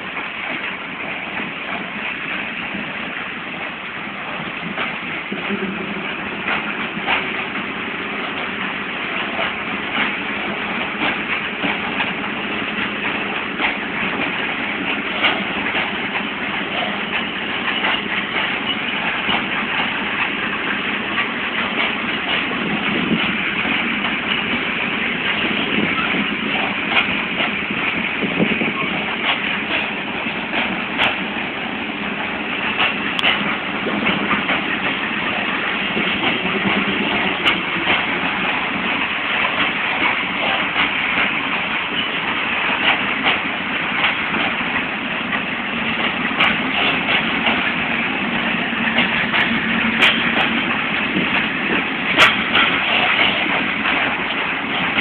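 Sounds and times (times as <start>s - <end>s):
steel wheels clattering on rails: 0.0s - 55.0s
freight wagons rolling past: 4.4s - 55.0s.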